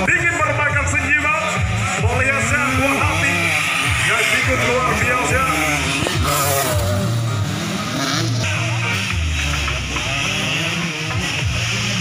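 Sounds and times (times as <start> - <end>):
motorbike engine revving: 0.0 - 12.0.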